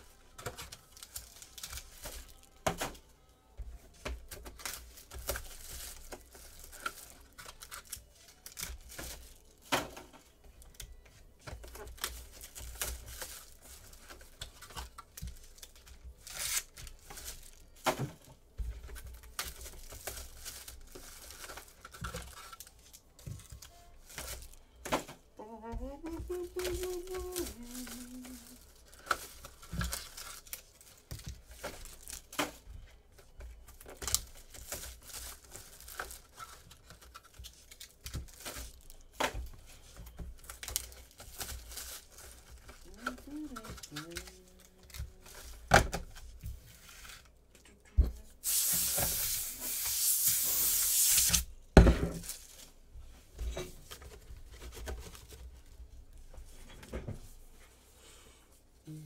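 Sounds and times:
plastic wrap tearing and crinkling: 0.0s - 47.5s, 48.4s - 52.8s.

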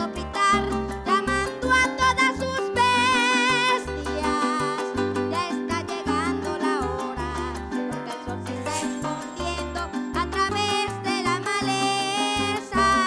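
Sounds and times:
harp with cuatro and maracas: 0.0s - 13.0s.

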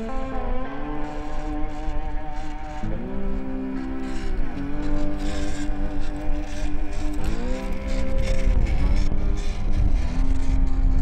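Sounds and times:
electric motor whine: 0.0s - 11.0s.

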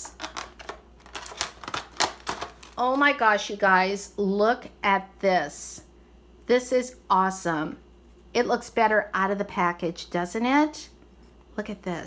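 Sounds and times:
scissors cutting plastic: 0.0s - 2.8s.

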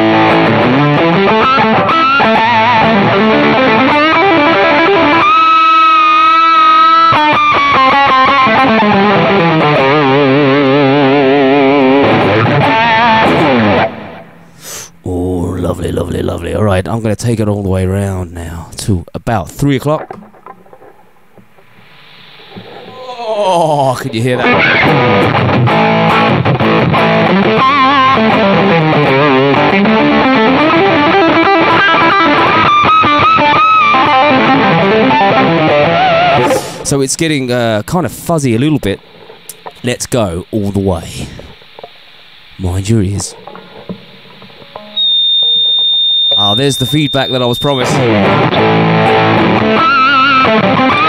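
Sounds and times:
guitar amp hiss: 0.0s - 15.1s, 21.6s - 51.0s.

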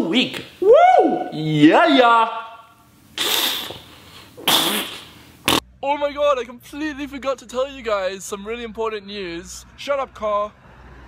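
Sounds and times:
man speaking: 5.8s - 10.5s.

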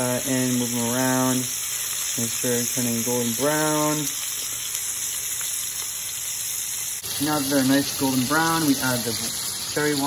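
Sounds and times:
chicken wings sizzling in oil: 0.0s - 10.0s.

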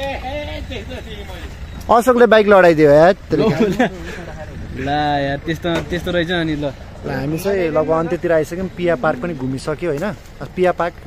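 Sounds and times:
low steady rumble: 0.0s - 11.0s
men talking softly: 0.0s - 11.0s.

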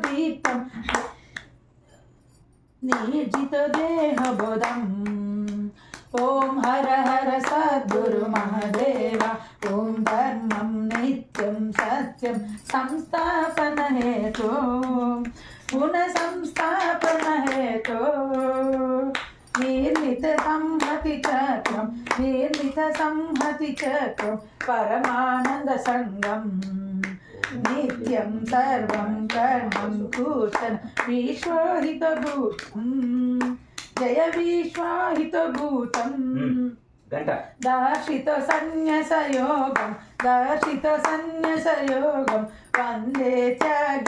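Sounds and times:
hand claps keeping time: 0.0s - 1.6s, 2.8s - 36.3s, 37.6s - 44.0s.

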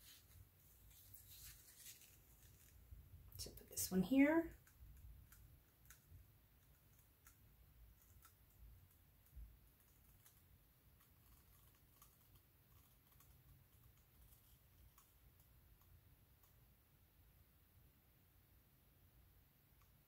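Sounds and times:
faint room hum: 0.0s - 20.0s.

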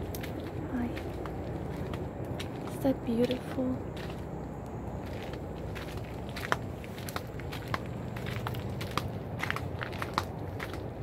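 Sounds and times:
footsteps crunching dry leaves: 0.0s - 11.0s
steady low rumble: 0.0s - 11.0s.

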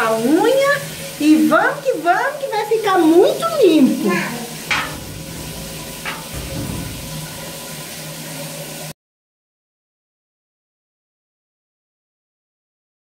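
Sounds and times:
sharp knocks: 4.7s - 7.5s.

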